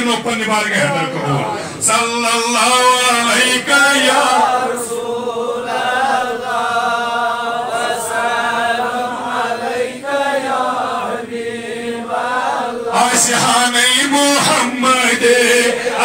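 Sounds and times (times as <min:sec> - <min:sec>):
man chanting: 0:00.0 - 0:04.9, 0:12.9 - 0:16.0.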